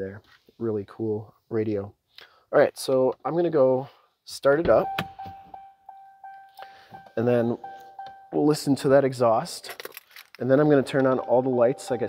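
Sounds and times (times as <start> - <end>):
car warning chime: 4.7 - 9.3, 10.7 - 12.0.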